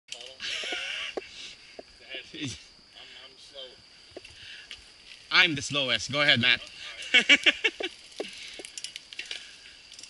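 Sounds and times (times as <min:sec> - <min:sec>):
bikes clicking and knocking: 0:00.1 - 0:01.9, 0:06.7 - 0:10.0.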